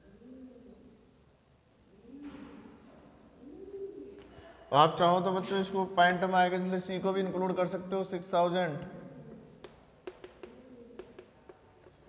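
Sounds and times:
bird cooing: 0:00.0 - 0:01.1, 0:01.8 - 0:04.4, 0:08.8 - 0:11.6.

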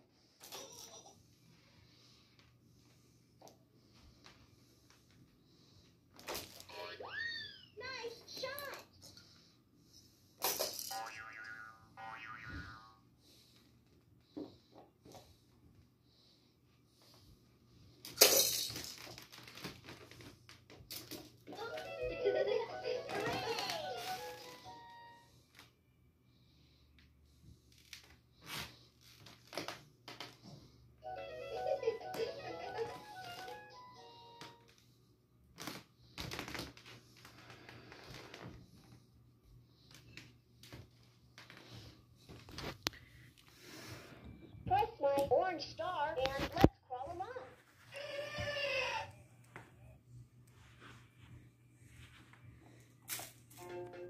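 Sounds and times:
tinny electronic toy jingle: 0:21.6 - 0:25.3.

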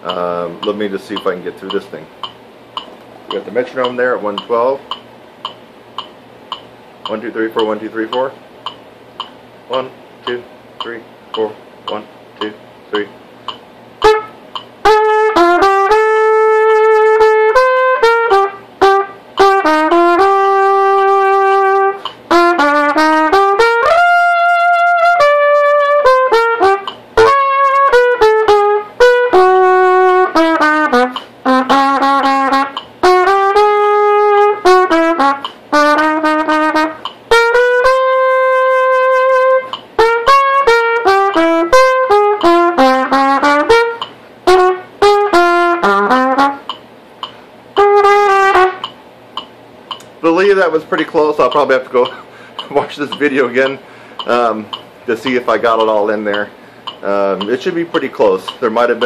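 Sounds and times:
metronome clicking: 0:00.0 - 0:59.0
solo trumpet melody: 0:14.0 - 0:46.8, 0:47.8 - 0:48.9.

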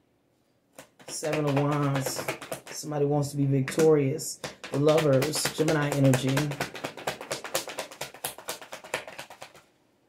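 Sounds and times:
cards being shuffled: 0:00.8 - 0:02.9, 0:03.6 - 0:09.7.

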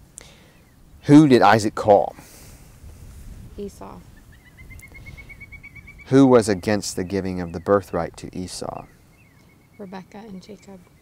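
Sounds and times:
faint outdoor background noise: 0:00.0 - 0:11.0
bird calling short clear notes: 0:03.6 - 0:06.2.

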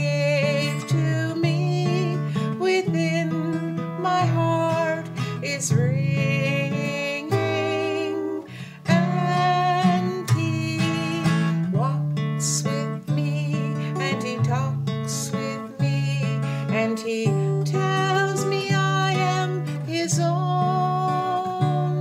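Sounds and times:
acoustic guitar strumming: 0:00.0 - 0:22.0.

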